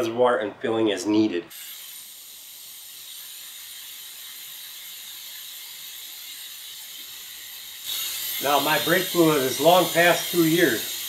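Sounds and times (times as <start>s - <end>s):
pneumatic vacuum bleeder hissing: 1.5s - 11.0s.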